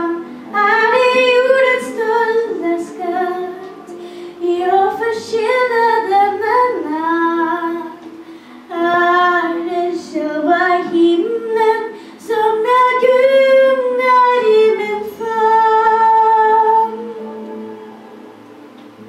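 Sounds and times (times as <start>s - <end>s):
girl singing a ballad: 0.0s - 18.5s
quiet musical accompaniment: 0.0s - 19.0s.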